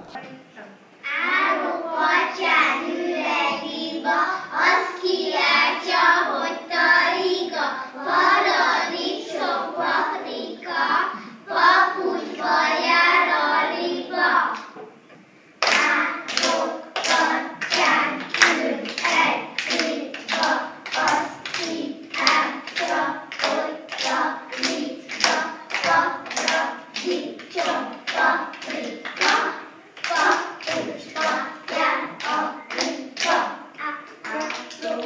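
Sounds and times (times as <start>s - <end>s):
children singing a rhyme: 1.0s - 14.8s, 15.6s - 35.0s
children clapping in rhythm: 15.6s - 35.0s.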